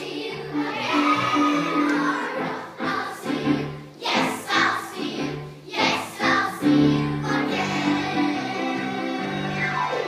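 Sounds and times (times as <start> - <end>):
children singing in chorus: 0.0 - 10.0.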